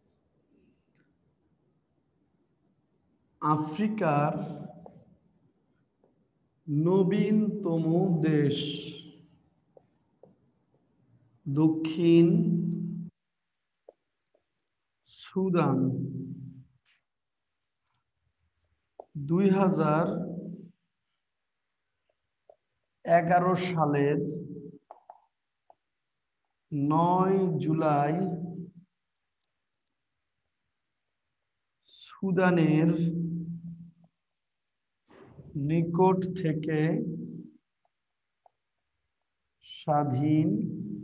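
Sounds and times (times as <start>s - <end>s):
marker ticking on whiteboard: 13.8s - 14.8s, 24.8s - 25.9s.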